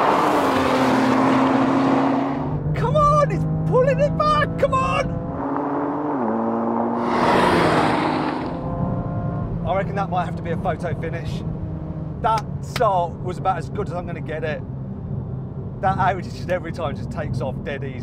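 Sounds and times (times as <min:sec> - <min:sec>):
car rushing past: 0:00.0 - 0:02.8, 0:04.5 - 0:09.6
race car engines at full throttle: 0:00.0 - 0:18.0.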